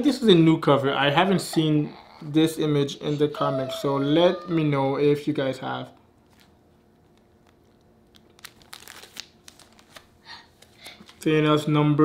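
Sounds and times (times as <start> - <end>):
plastic bags crinkling: 6.3 - 10.1.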